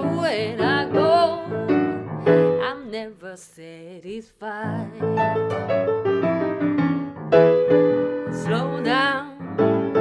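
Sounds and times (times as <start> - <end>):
grand piano playing blues: 0.0 - 3.1, 4.7 - 10.0.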